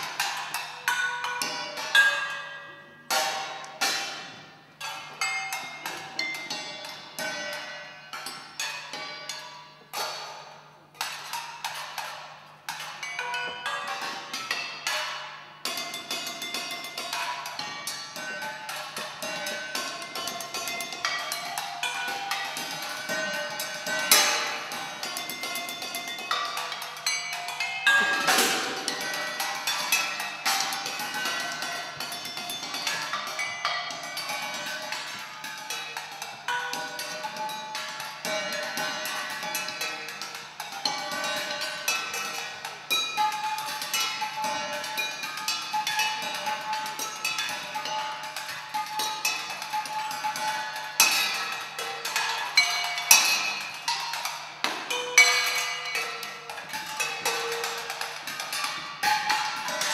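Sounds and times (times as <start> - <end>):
quick strikes on ringing percussion: 0.0 - 59.9.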